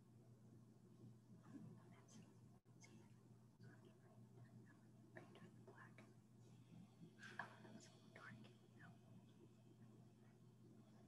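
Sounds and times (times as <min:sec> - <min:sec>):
low steady hum: 0:00.0 - 0:11.0
faint whispering voices: 0:01.4 - 0:11.0.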